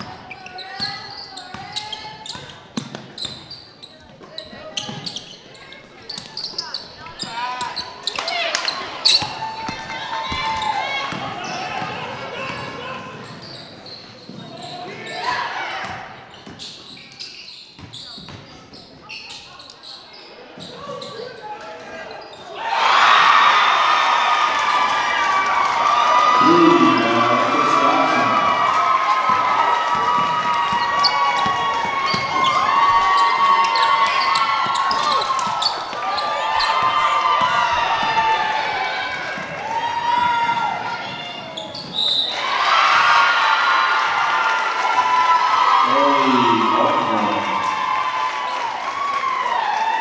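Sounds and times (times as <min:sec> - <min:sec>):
basketball bouncing on court: 0:00.0 - 0:03.5, 0:09.1 - 0:14.7, 0:17.8 - 0:18.8
echoing voices of players and fans: 0:05.6 - 0:13.4, 0:20.6 - 0:50.0.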